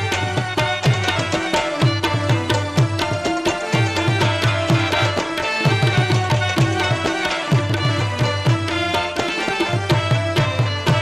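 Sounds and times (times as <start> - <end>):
rabab melody: 0.0 - 11.0
tabla drumming: 0.0 - 11.0.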